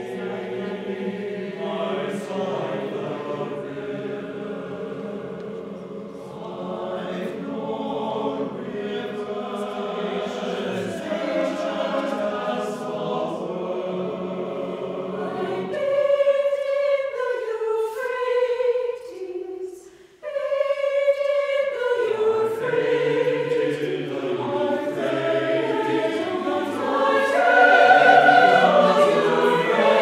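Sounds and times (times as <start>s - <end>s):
mixed choir singing: 0.0s - 30.0s.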